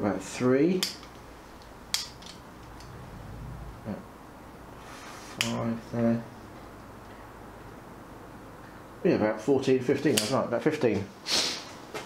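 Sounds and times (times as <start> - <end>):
low steady hum: 0.4 - 9.0.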